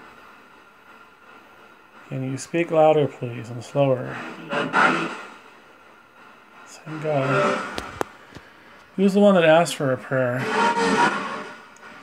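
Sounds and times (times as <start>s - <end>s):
low hiss: 0.0s - 12.0s
radio static burst: 3.8s - 5.5s, 6.8s - 8.0s, 9.5s - 12.0s.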